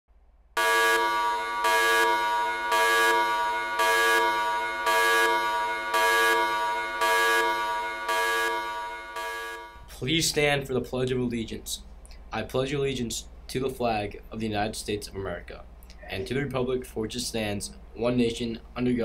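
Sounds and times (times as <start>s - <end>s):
horn-like electronic tone: 0.6s - 9.9s.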